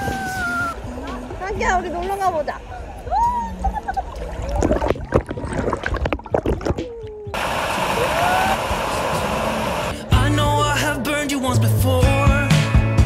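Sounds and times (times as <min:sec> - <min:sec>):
pool water splashing: 0:00.0 - 0:10.1
steady rushing noise: 0:07.4 - 0:10.1.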